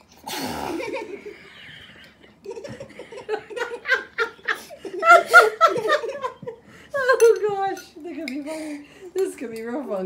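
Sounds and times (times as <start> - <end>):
young girls laughing: 0.7 - 7.1.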